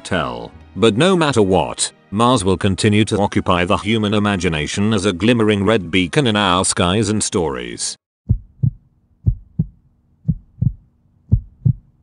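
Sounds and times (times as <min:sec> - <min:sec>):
heartbeat thumps: 0:08.2 - 0:12.0
faint low hum: 0:08.3 - 0:12.0.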